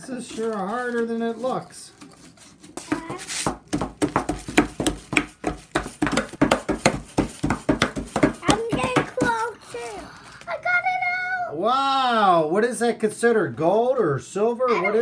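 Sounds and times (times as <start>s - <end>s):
child's voice: 2.9s - 3.3s, 8.4s - 11.6s, 14.7s - 15.0s.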